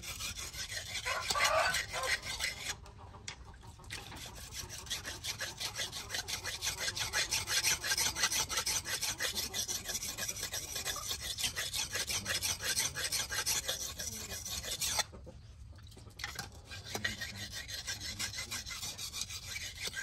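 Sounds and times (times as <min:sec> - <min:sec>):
knife scraping on sharpening stone: 0:00.0 - 0:02.8, 0:03.9 - 0:15.1, 0:16.2 - 0:20.0.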